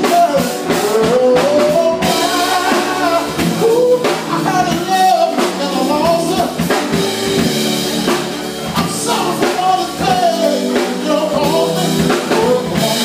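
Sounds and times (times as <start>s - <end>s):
loud amplified music with drums: 0.0s - 13.0s
man singing into microphone: 0.0s - 13.0s.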